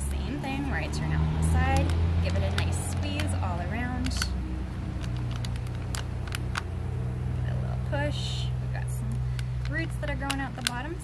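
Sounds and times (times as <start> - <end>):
plastic tray crackling: 1.3 - 6.7, 9.1 - 11.0.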